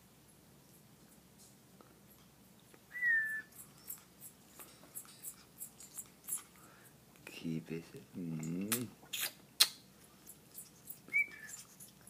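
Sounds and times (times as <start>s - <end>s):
parrot whistle: 2.9s - 3.6s, 11.1s - 11.7s.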